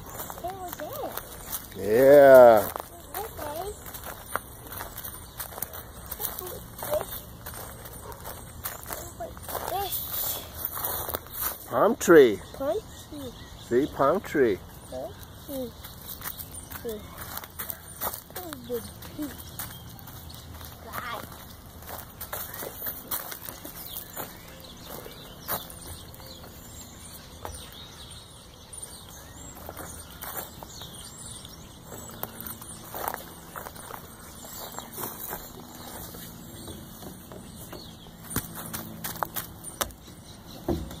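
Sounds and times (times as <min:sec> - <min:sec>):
footsteps crunching on wood chips: 0:00.0 - 0:12.0, 0:15.1 - 0:39.9.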